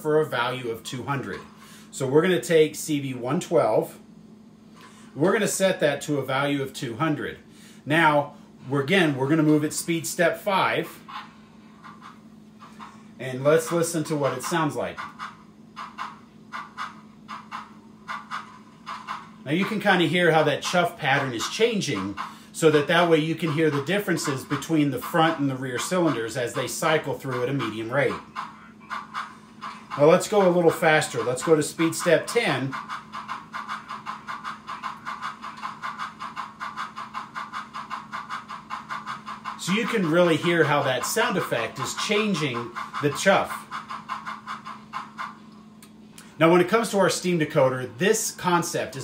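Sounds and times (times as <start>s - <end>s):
model steam locomotive chuffing: 0.0s - 4.0s, 5.1s - 49.0s
steady low hum: 0.0s - 49.0s.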